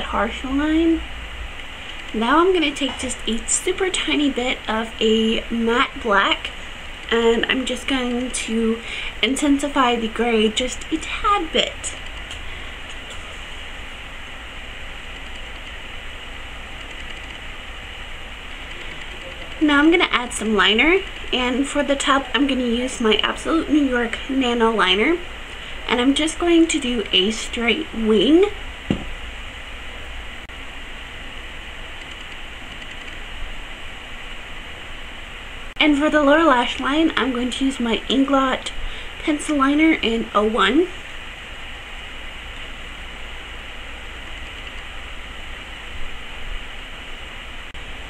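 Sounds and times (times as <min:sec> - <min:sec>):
low hum: 0:00.0 - 0:48.0
steady background hiss: 0:00.0 - 0:48.0.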